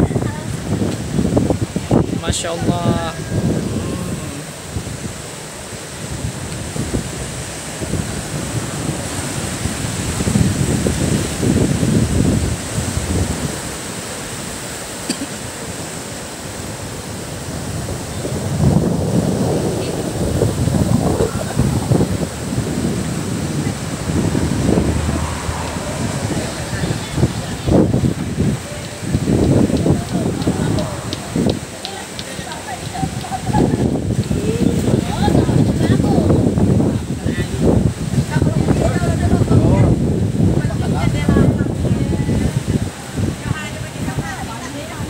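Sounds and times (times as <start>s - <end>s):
wind buffeting microphone: 0.0s - 15.0s, 15.6s - 45.0s
waves washing over rocky shore: 0.0s - 45.0s.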